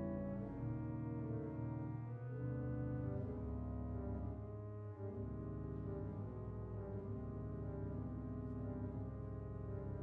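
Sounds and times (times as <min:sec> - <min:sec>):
pipe organ chords: 0:00.0 - 0:10.0.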